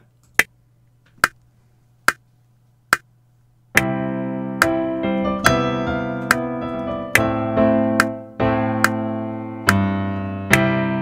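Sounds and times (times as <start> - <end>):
metronome clicking: 9.6 - 9.9.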